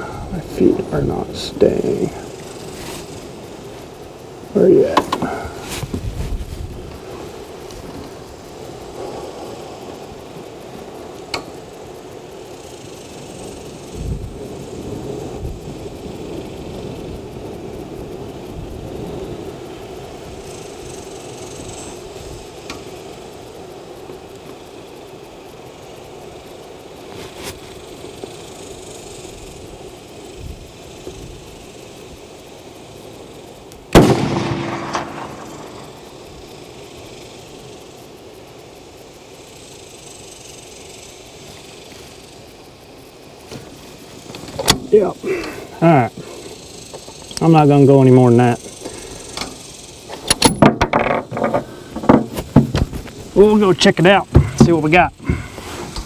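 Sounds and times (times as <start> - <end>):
rifle shot with echo: 33.9 - 35.8.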